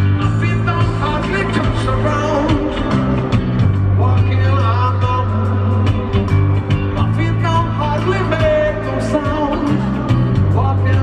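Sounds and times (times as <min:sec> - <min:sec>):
electric bass line: 0:00.0 - 0:11.0
live rock band music: 0:00.0 - 0:11.0.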